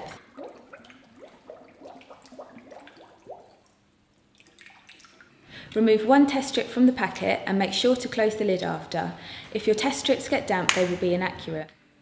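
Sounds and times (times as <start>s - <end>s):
bubble blips: 0.0s - 3.6s
water gurgling into bottle: 0.0s - 5.3s.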